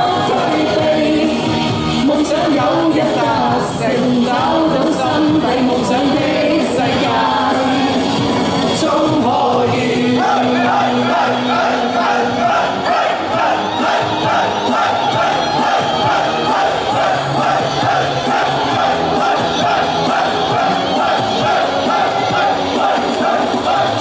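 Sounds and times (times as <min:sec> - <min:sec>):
pop backing track with steady beat: 0:00.0 - 0:24.0
crowd shouting along in unison: 0:09.4 - 0:24.0.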